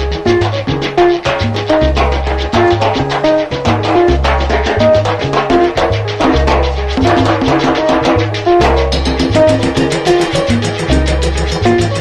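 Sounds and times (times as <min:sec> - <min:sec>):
bass line: 0:00.0 - 0:12.0
percussion strokes: 0:00.0 - 0:12.0
salsa music: 0:00.0 - 0:12.0
short repeated pitched notes: 0:00.4 - 0:12.0.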